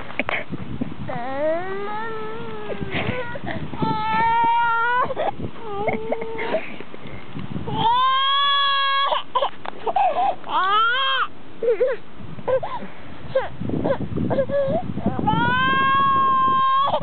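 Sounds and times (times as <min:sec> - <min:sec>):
infant crying: 0:01.1 - 0:06.6, 0:07.7 - 0:17.0
infant sobbing breaths: 0:02.4 - 0:06.8, 0:09.3 - 0:10.5, 0:11.6 - 0:14.8.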